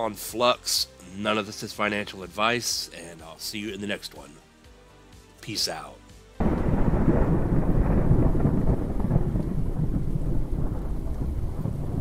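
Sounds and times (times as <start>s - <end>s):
rain: 6.4s - 12.0s
thunder rumbling: 6.4s - 12.0s.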